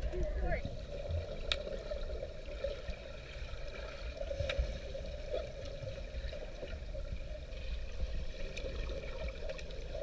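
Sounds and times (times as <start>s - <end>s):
underwater churning water: 0.0s - 10.0s.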